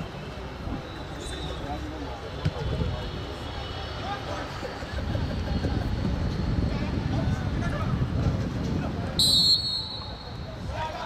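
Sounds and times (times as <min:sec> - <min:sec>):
distant voices and shouts: 0:08.8 - 0:11.0.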